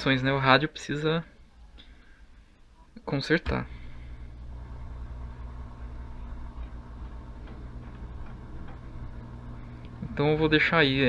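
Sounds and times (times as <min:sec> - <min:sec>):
speakers low hum: 0:02.6 - 0:11.0
faint radio static: 0:02.7 - 0:11.0.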